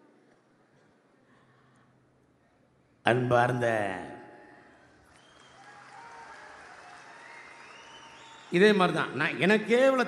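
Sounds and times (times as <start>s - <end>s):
audience applause: 5.0s - 9.0s.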